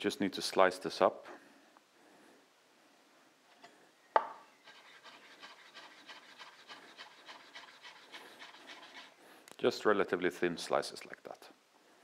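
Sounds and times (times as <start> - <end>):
knife cutting strokes: 4.6 - 9.2.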